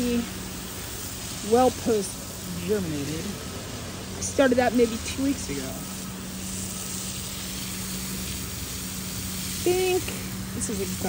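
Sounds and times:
hose nozzle spray hissing: 0:00.0 - 0:11.0.

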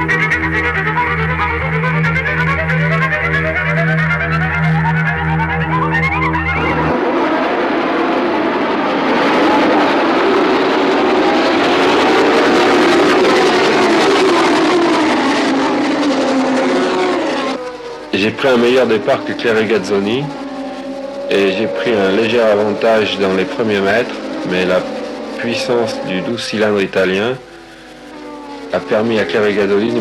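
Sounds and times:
music with steady bass: 0:00.0 - 0:06.9
racing cars accelerating: 0:00.0 - 0:30.0.

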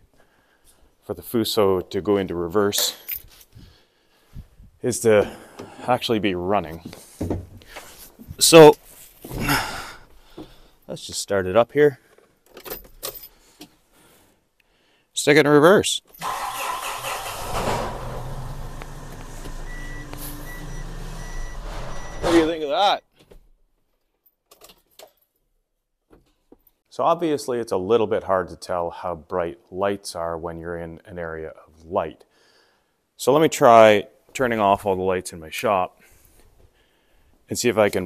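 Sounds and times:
man speaking: 0:01.1 - 0:03.1, 0:04.8 - 0:06.9, 0:08.4 - 0:08.8, 0:10.9 - 0:12.0, 0:15.2 - 0:16.0, 0:22.2 - 0:23.0, 0:33.2 - 0:35.9, 0:37.5 - 0:38.0
diesel truck engine idling: 0:16.6 - 0:22.6
reverse alarm beeping: 0:19.4 - 0:23.0.

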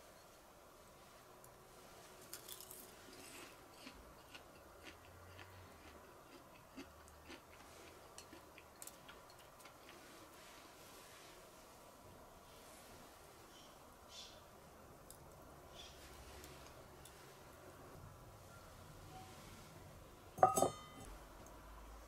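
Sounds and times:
crunching grilled shoot: 0:02.2 - 0:10.0.

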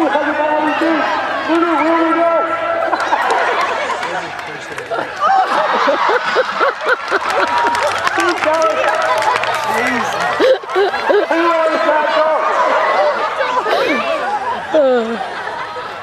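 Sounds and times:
crowd talking and calling out: 0:00.0 - 0:16.0.

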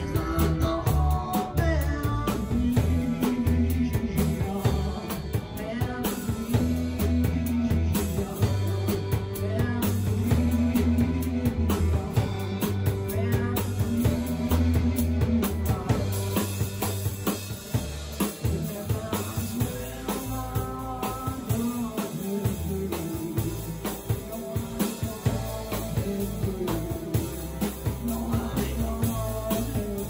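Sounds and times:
drum kit beat: 0:00.0 - 0:30.0
rock band playing: 0:00.0 - 0:30.0.

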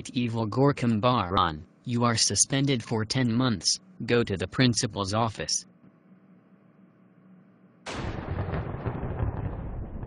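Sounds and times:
loud blast of noise: 0:07.9 - 0:10.0
rumble with crackles: 0:07.9 - 0:10.0.

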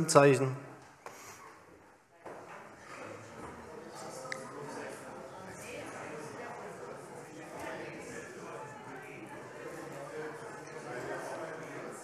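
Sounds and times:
murmur of voices: 0:00.0 - 0:12.0.

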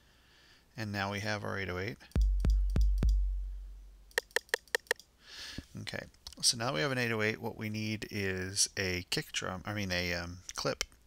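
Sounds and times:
quick high drum-machine hits: 0:02.1 - 0:04.5
deep kick drum booms: 0:02.2 - 0:04.1.

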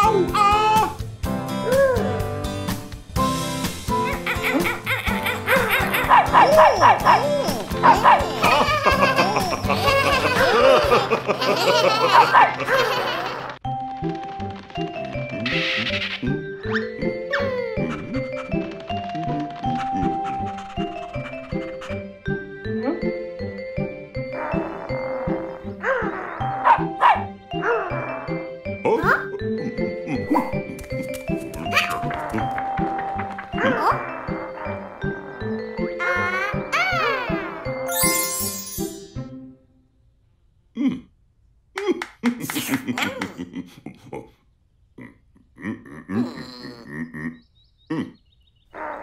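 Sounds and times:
background music: 0:00.0 - 0:40.0
cartoon dog yelping: 0:05.1 - 0:10.6, 0:12.1 - 0:12.9, 0:24.4 - 0:28.4, 0:31.7 - 0:32.5, 0:33.5 - 0:37.9.

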